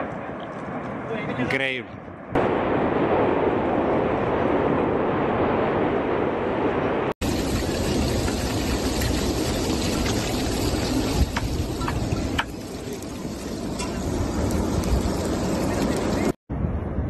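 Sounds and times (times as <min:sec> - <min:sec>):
volcano eruption rushing noise: 0:02.4 - 0:17.0.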